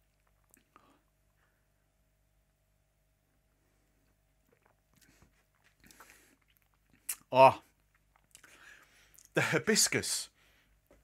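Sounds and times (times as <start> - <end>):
mouth sounds sipping and swallowing: 0.0 - 1.4, 3.4 - 9.3.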